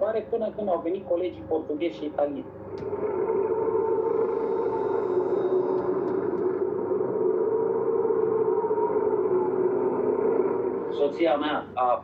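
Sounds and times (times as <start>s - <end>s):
low ambient drone: 0.0s - 12.0s.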